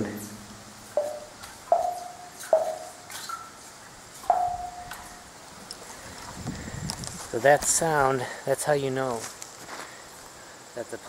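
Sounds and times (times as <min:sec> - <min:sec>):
plumb bob plinking on water: 0:01.0 - 0:03.5, 0:04.3 - 0:05.0.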